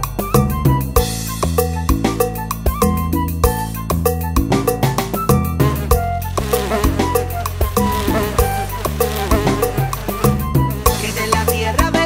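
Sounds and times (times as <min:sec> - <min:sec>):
background music with percussion: 0:00.0 - 0:12.0
buzzing insect sound effect: 0:05.8 - 0:11.6.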